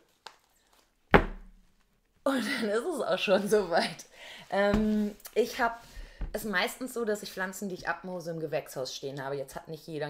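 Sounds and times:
loud thump: 1.1 - 1.6.

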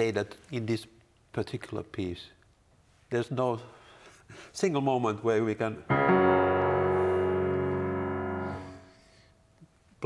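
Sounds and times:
piano chord ringing: 5.9 - 9.5.

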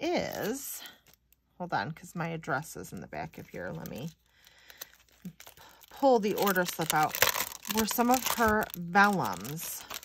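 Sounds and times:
paper rustling and crinkling: 3.3 - 10.0.

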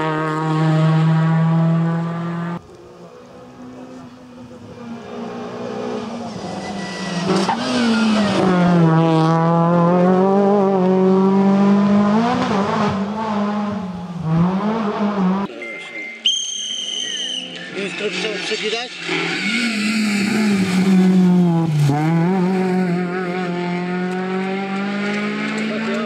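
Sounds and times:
rally car engine at high revs: 0.0 - 15.5, 17.5 - 26.0.

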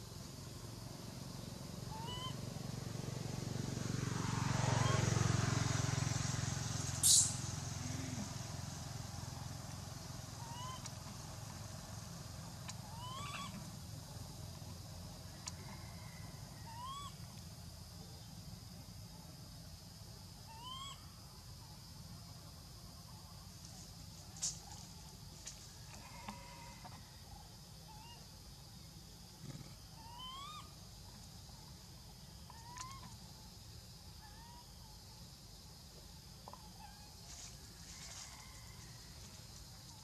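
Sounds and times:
high insect hum: 0.0 - 40.0.

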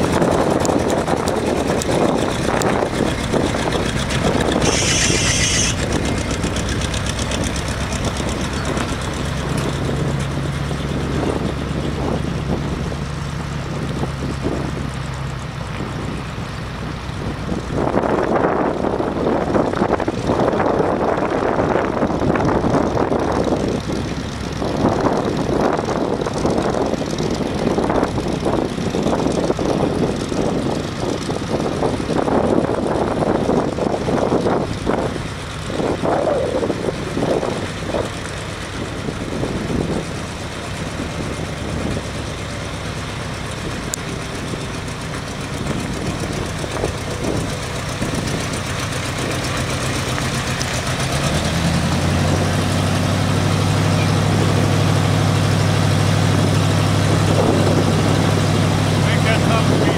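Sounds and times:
truck engine running: 0.0 - 59.9.

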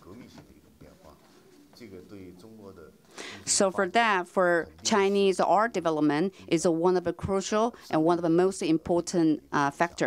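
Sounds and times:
man talking quietly: 0.0 - 3.0.

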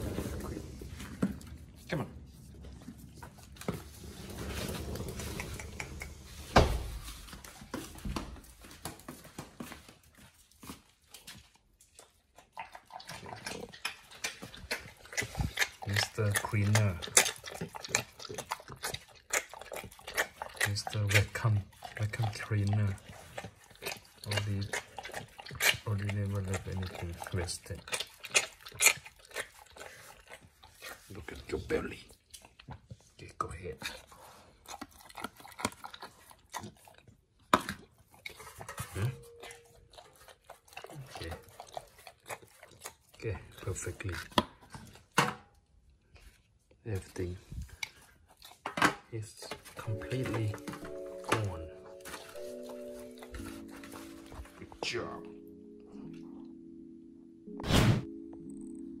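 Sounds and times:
dog licking metal tray: 10.2 - 45.1, 47.8 - 54.9.

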